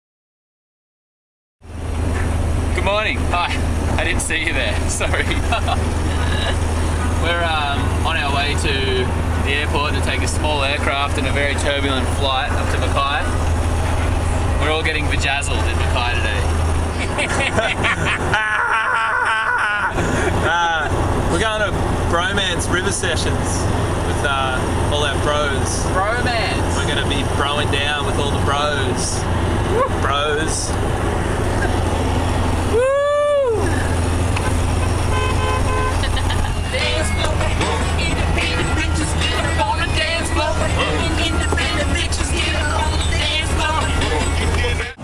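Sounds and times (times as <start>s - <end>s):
car cabin road drone: 1.6s - 45.0s
man laughing in high squeals: 17.1s - 20.4s
men singing along: 36.5s - 45.0s
music: 36.6s - 45.0s.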